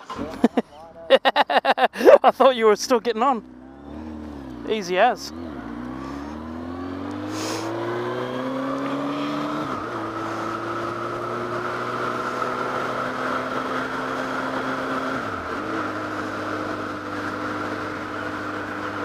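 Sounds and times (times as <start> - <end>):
motorcycle engine accelerating: 3.1 - 19.0.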